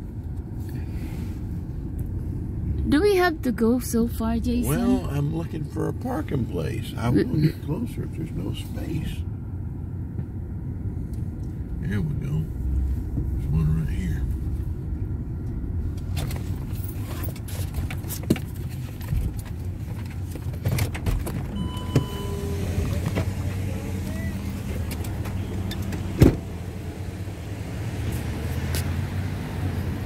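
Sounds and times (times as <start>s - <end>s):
car engine running: 0.0s - 30.0s
brief high tone: 21.6s - 23.0s
sharp thump: 26.2s - 26.5s.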